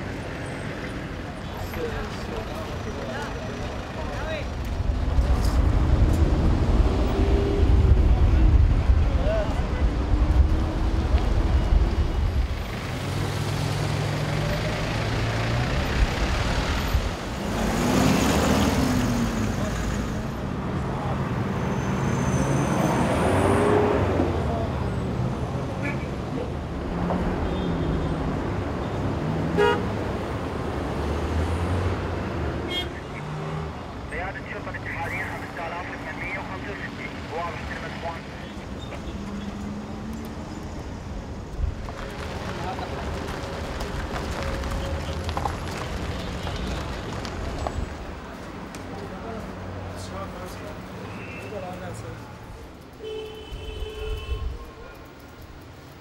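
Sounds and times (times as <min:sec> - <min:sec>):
vehicles passing close by: 0:00.0 - 0:56.0.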